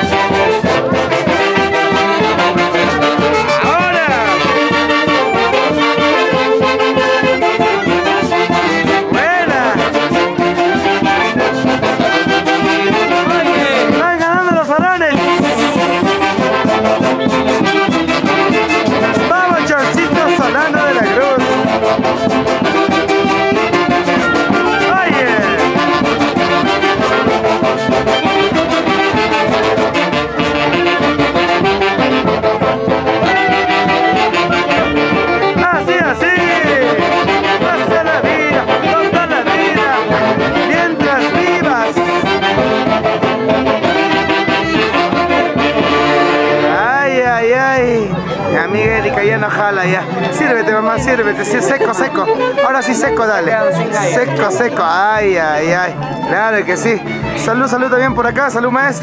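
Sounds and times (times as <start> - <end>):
brass orchestra playing dance tune: 0.0 - 59.0
swooping high note: 15.1 - 17.0.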